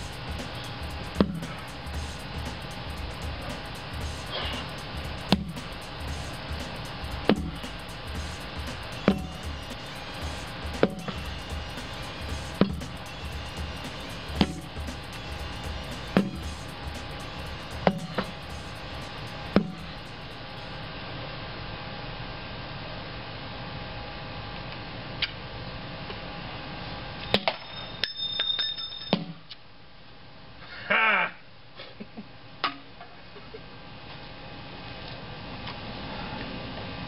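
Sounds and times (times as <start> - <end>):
background music: 0.0 - 20.9
tool striking rubber tire: 0.5 - 1.7, 5.3 - 5.7, 13.9 - 14.8.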